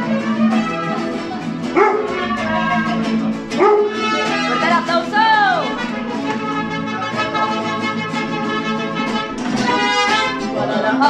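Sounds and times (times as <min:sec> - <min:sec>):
mariachi band playing: 0:00.0 - 0:11.0.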